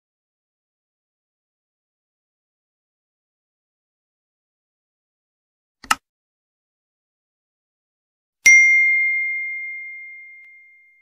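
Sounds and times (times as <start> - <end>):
notification bell ding: 8.5 - 11.0.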